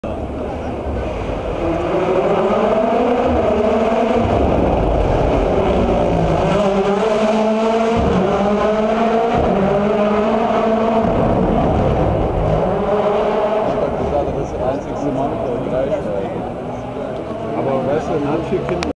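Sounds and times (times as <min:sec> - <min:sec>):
rally car engine accelerating: 0:00.0 - 0:18.9.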